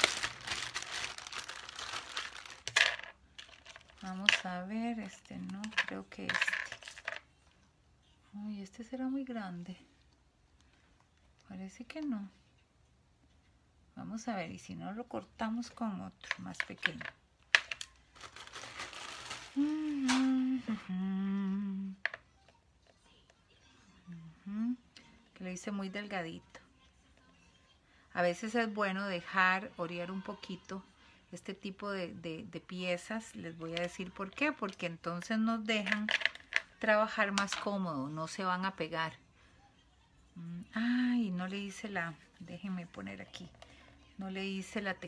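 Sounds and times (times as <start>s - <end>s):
plastic crinkling and rustling: 0.0s - 7.2s, 16.8s - 20.4s
woman humming: 19.5s - 22.0s, 24.0s - 24.9s.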